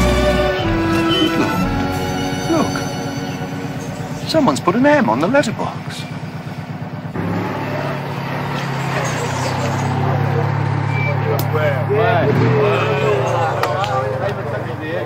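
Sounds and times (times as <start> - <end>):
indistinct voices calling out: 0.0 - 6.2, 7.2 - 14.7
car engine running: 0.0 - 15.0.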